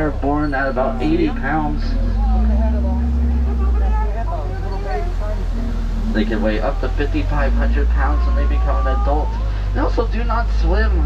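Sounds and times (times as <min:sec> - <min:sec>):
faint voices talking: 0:00.0 - 0:11.0
truck engine rumble: 0:00.0 - 0:11.0.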